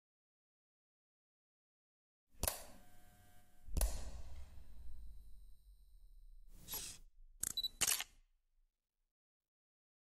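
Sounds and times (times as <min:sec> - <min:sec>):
camera shutter clicks: 0:06.7 - 0:08.2.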